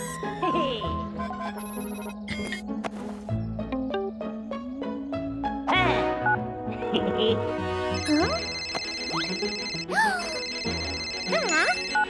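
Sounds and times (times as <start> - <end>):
background music: 0.0 - 12.0
cartoon phone ringtone: 7.9 - 12.0.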